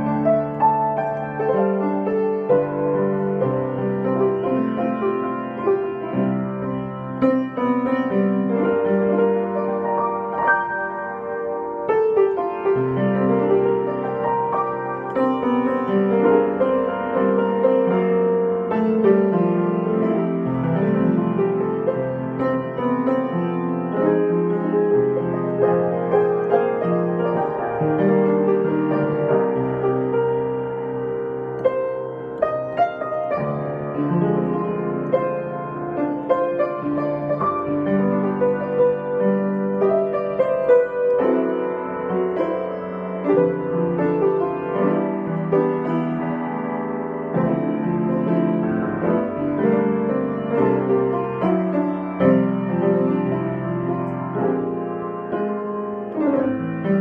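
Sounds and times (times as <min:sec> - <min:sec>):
solo piano: 0:00.0 - 0:57.0.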